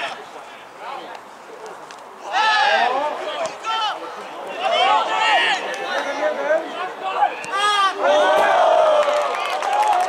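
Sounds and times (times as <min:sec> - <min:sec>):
crowd shouting: 0:02.2 - 0:10.0.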